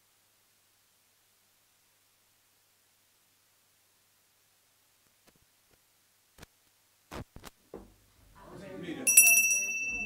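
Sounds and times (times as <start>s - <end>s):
small bell ringing: 9.1s - 10.0s.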